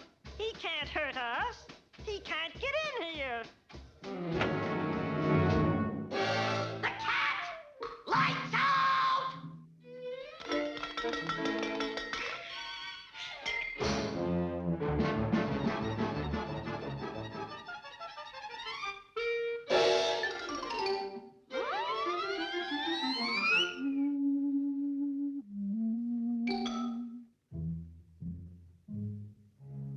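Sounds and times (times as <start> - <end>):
fast orchestral cartoon music: 4.1 - 7.4, 13.8 - 19.1, 19.7 - 24.1.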